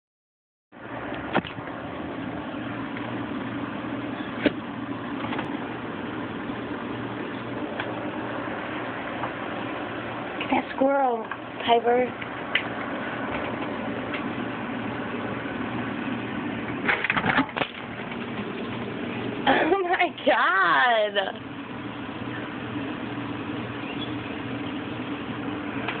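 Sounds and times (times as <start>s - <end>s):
low mechanical hum: 0.8s - 26.0s.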